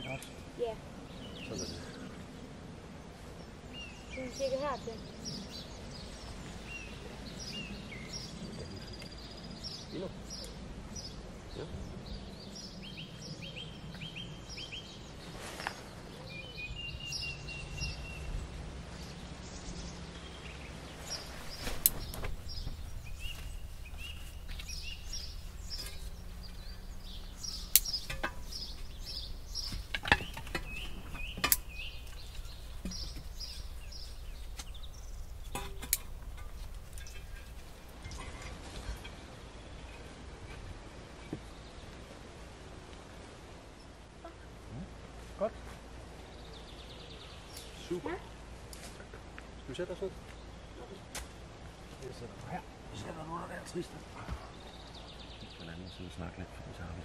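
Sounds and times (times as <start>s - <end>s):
small birds chirping: 0.0s - 40.2s, 45.4s - 57.0s
low steady rumble: 18.2s - 38.6s
sharp snaps or knocks: 27.5s - 33.5s.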